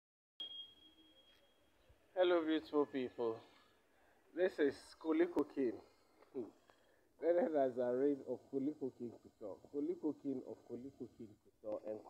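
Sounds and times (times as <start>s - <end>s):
thin high tone: 0.4s - 3.7s.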